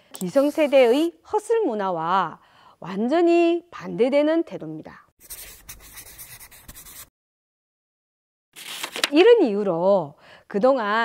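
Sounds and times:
papery rustling with clicks: 8.6 - 9.2.

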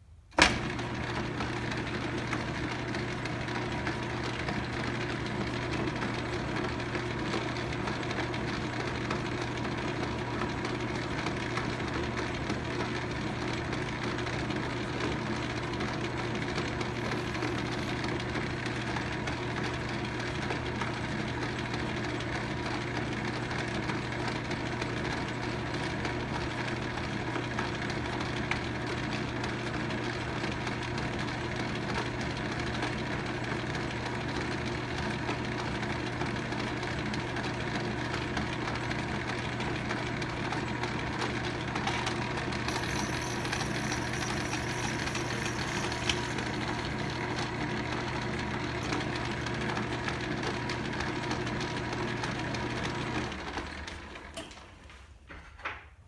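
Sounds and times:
metal lathe humming: 40.8 - 54.1.

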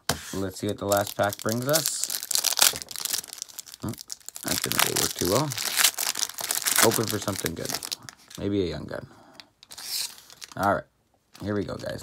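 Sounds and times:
foil wrapper crinkling and tearing: 0.6 - 8.4, 9.7 - 10.7.

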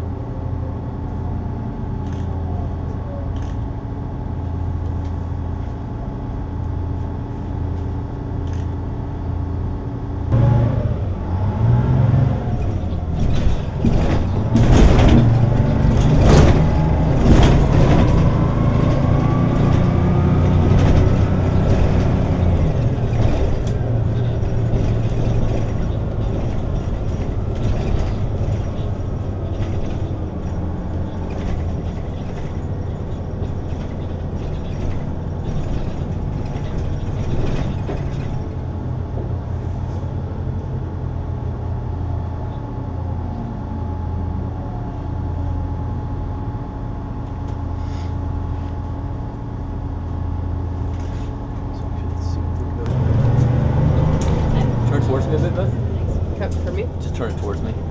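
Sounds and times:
bus accelerating whine: 0.0 - 57.9
bus engine rumbling: 0.0 - 57.9
clattering knocks and rattles: 12.5 - 39.6.

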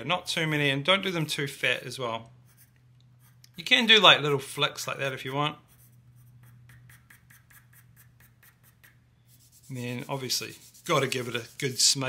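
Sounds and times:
pencil scratching on paper: 2.4 - 4.0, 4.6 - 12.0.

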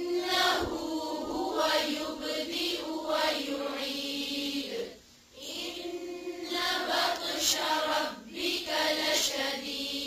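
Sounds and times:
melodic chanted recitation: 0.0 - 10.0.

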